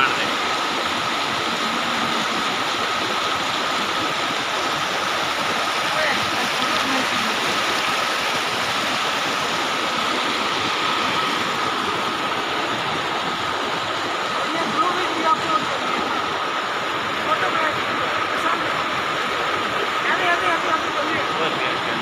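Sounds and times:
stream rushing over boulders: 0.0s - 22.0s.

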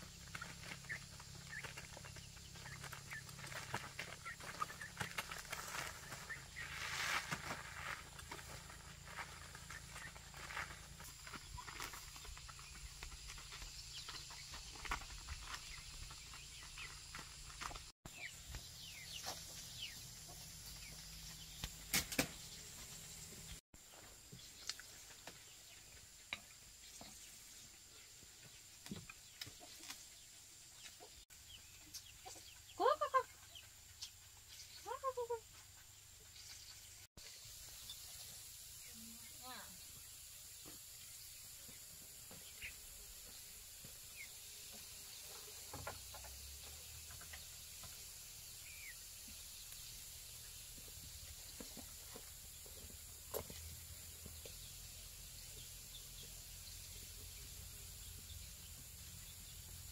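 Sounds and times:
chickens clucking: 0.0s - 37.0s
faint outdoor background noise: 0.0s - 59.9s.

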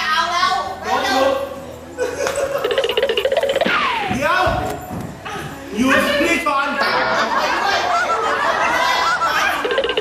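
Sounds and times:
fast even ticking: 2.6s - 4.1s, 9.7s - 10.0s
wavering tone: 2.6s - 4.1s.

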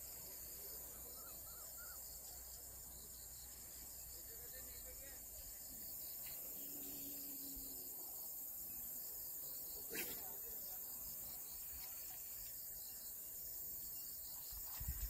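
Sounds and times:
insects chirring: 0.0s - 15.0s.

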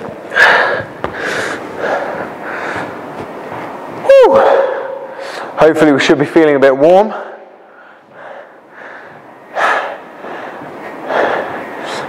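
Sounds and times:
man breathing hard: 0.3s - 3.0s, 4.4s - 5.6s, 7.1s - 12.0s.

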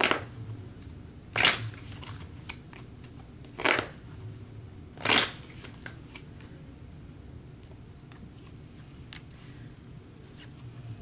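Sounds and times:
card deck shuffling: 0.0s - 0.3s, 1.4s - 4.0s, 5.0s - 6.4s.

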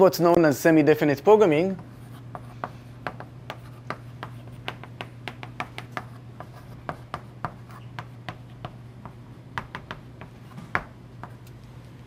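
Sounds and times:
chalk writing on a chalkboard: 1.8s - 8.8s.

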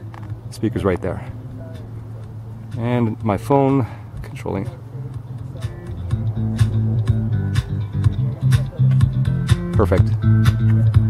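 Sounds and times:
guitar and bass music over speakers: 0.0s - 11.0s.

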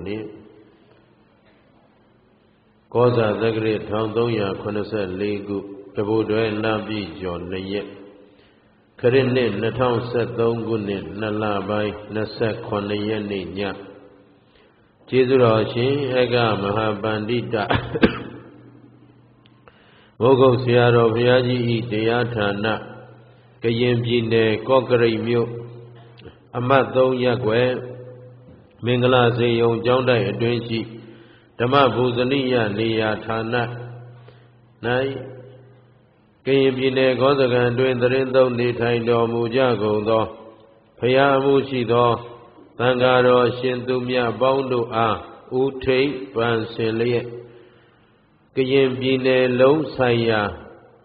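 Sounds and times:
man chanting: 2.9s - 8.2s, 9.0s - 14.0s, 15.0s - 17.9s, 20.2s - 34.2s, 34.8s - 35.8s, 36.4s - 47.5s, 48.5s - 50.8s.

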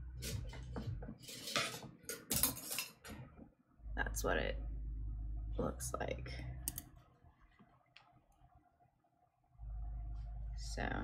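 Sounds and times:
knitting needles clicking: 6.6s - 6.9s.

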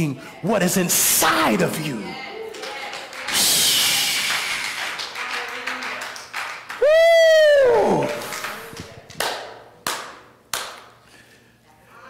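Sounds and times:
congregation clapping: 1.6s - 11.0s
loud hiss-like burst: 3.3s - 5.0s.

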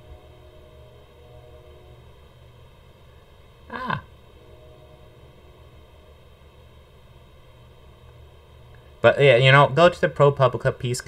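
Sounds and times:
faint low hum: 0.0s - 11.0s
faint steady tones: 0.0s - 11.0s.

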